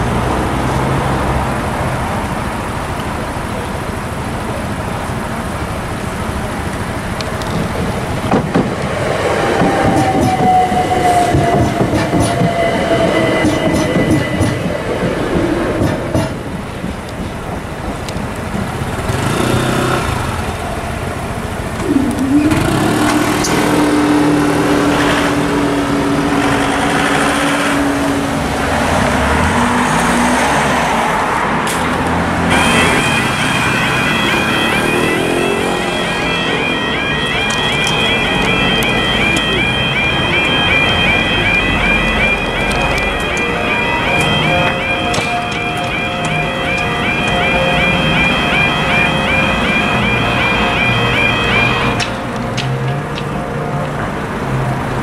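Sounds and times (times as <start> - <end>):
road traffic: 0.0 - 55.0
two-tone crossing alarm: 7.0 - 17.8, 18.4 - 28.7, 32.4 - 54.8
electric train motor whine: 32.5 - 52.0.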